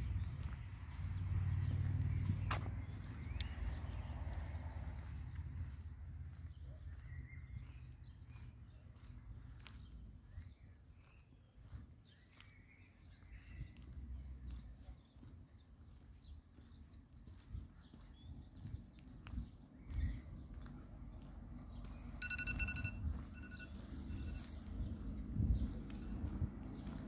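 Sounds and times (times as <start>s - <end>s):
footsteps on brick paving: 0.0s - 27.0s.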